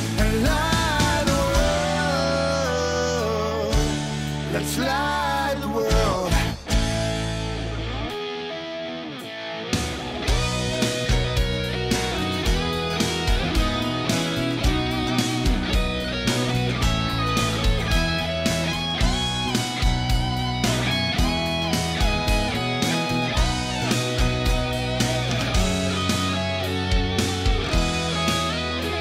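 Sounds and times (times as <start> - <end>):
drums: 0.0 - 8.1, 9.6 - 29.0
bass guitar: 0.0 - 29.0
electric guitar lead: 0.0 - 29.0.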